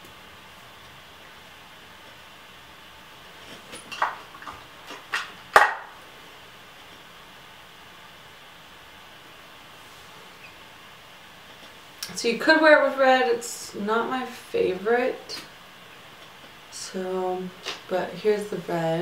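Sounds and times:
faint steady hiss: 0.0s - 19.0s.

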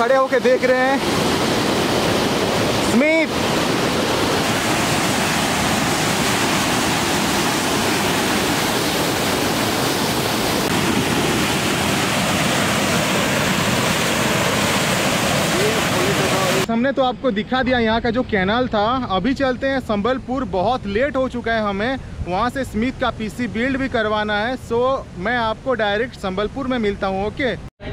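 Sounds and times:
water rushing from an outlet: 0.0s - 16.7s.

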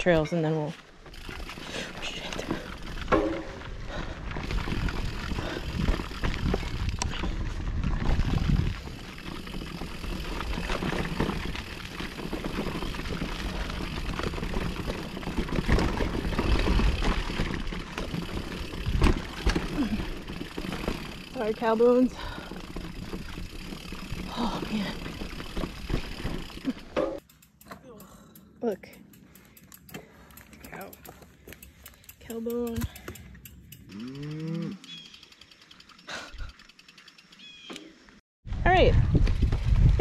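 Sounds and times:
bicycle tyre and chain rattle: 0.0s - 40.0s
wind rush on microphone: 3.9s - 9.1s, 38.5s - 40.0s.

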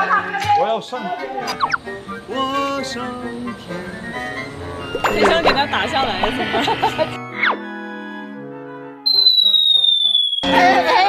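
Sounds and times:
soft plucked music: 1.4s - 7.2s
cartoon whistle gliding down: 1.5s - 1.8s, 9.1s - 11.0s.

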